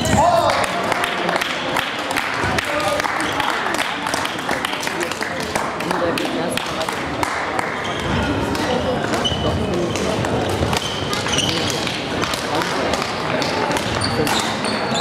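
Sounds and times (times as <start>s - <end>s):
shoes squeaking on wooden floor: 9.1s - 12.1s, 13.4s - 15.0s.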